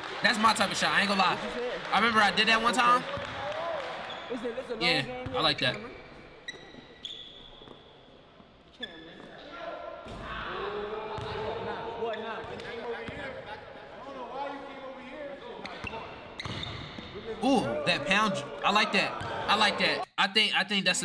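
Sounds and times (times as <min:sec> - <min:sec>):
people talking: 0:00.2 - 0:03.0, 0:17.4 - 0:21.0.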